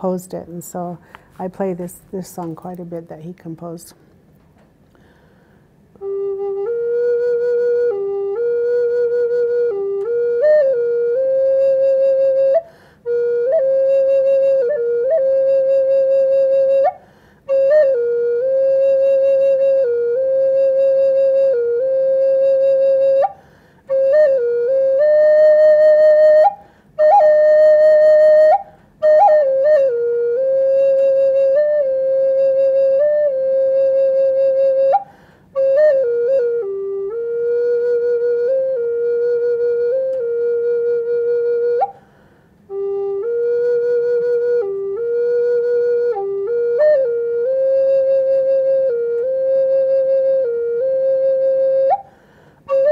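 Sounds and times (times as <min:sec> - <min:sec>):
wooden flute melody: 0:05.9 - 0:52.9.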